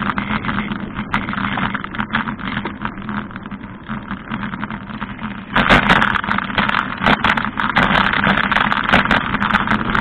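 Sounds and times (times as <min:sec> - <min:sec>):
bicycle tyres on pavement: 0:00.0 - 0:10.0
wind noise: 0:00.0 - 0:10.0.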